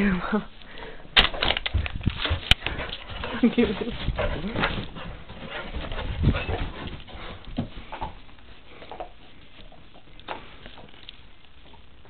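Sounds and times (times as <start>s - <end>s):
dogs thumping and scuffling: 1.2s - 12.0s.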